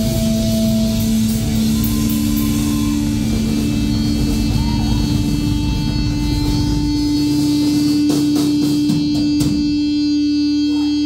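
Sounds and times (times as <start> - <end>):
low rumble: 0.0 - 8.1
electric guitars droning: 0.0 - 11.0.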